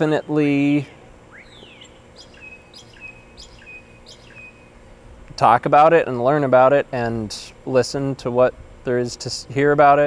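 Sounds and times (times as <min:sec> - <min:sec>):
songbird singing: 0:00.0 - 0:05.0.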